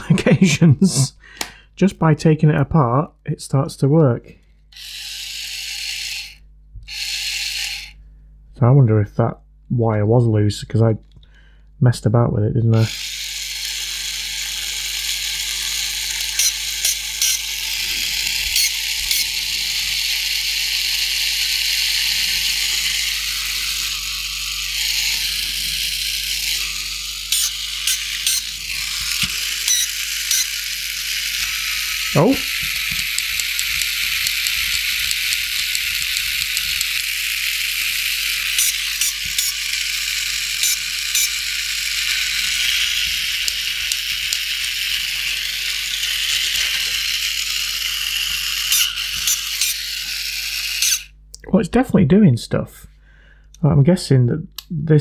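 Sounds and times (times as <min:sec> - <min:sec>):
toy robot motor whirring: 0:04.7 - 0:08.0, 0:12.7 - 0:51.2.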